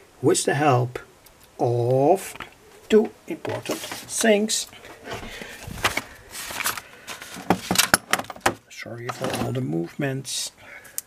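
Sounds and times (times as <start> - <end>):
camera handling rustling: 5.2 - 8.4.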